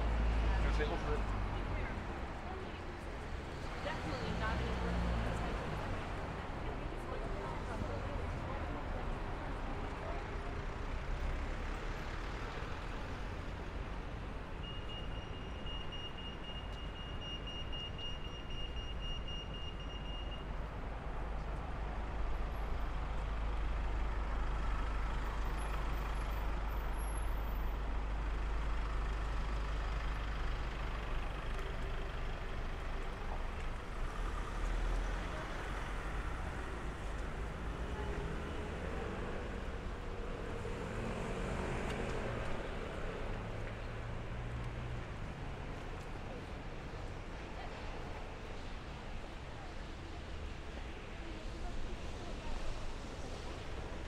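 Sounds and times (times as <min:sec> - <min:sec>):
traffic rumble: 0:00.0 - 0:54.0
pedestrian crossing signal beep: 0:14.6 - 0:20.6.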